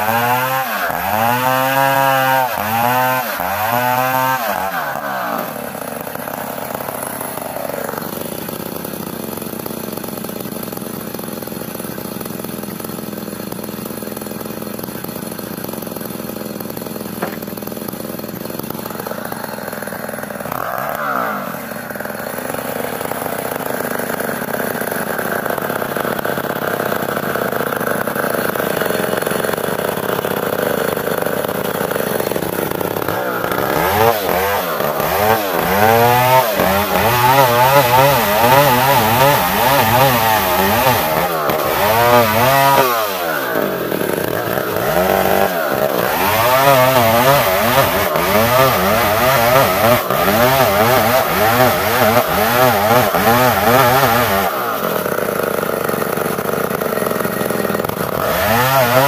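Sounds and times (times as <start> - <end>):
chainsaw cutting wood: 0.0 - 59.0.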